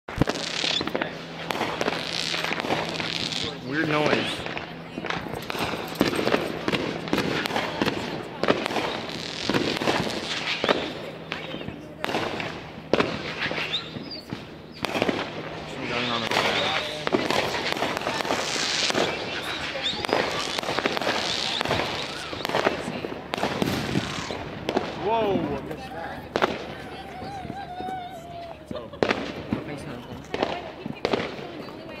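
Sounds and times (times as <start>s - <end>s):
fireworks crackling pops: 0.1s - 32.0s
sharp fireworks reports: 0.1s - 32.0s.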